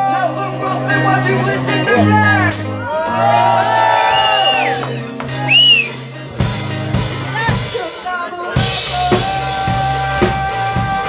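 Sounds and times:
electric guitar: 0.0s - 8.0s
bass guitar: 0.0s - 11.0s
drum kit beat: 2.4s - 11.0s.

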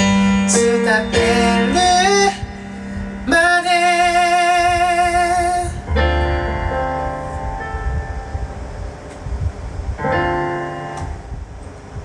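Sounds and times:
piano chords on synthesizer: 0.0s - 12.0s.

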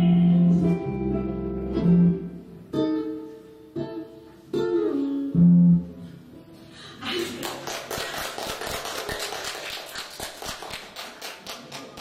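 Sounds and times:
audience clapping: 7.1s - 12.0s.

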